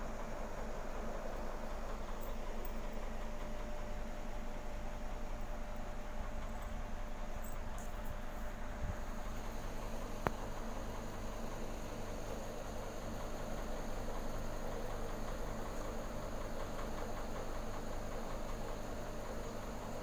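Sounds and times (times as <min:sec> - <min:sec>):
aquarium filter hum: 0:00.0 - 0:20.0.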